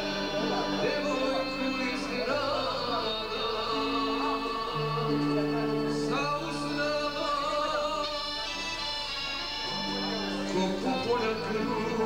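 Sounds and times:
button accordion chords: 0.0 - 12.0
man singing folk melody: 0.0 - 12.0.

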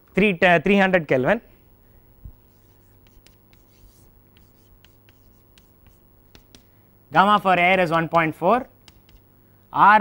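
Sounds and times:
chalk scratching on chalkboard: 2.4 - 6.7, 8.1 - 9.3.

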